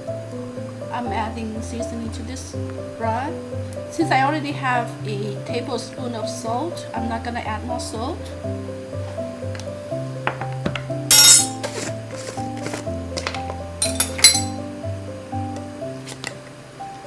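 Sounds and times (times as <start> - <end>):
instrumental background music: 0.0 - 17.0
kitchenware clinking: 10.3 - 11.9, 12.6 - 14.6.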